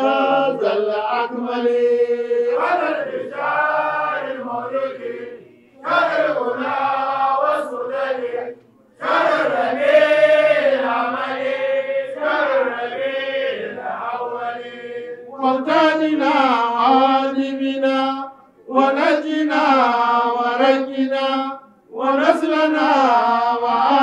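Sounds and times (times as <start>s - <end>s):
man chanting unaccompanied: 0.0s - 24.0s.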